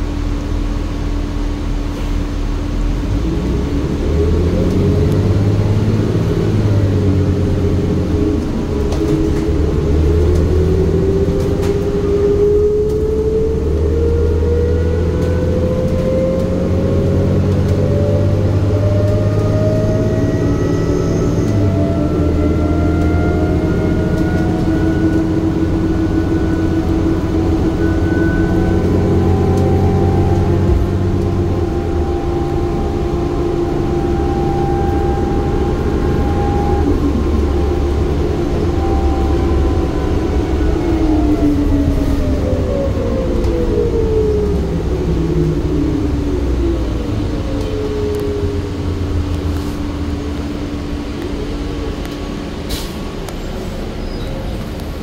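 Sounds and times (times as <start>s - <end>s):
bus engine whine: 0.0s - 55.0s.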